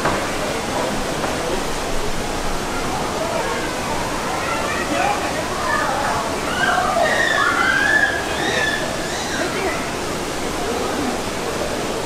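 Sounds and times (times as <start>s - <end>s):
murmur of voices: 0.0s - 12.0s
rushing water: 0.0s - 12.0s.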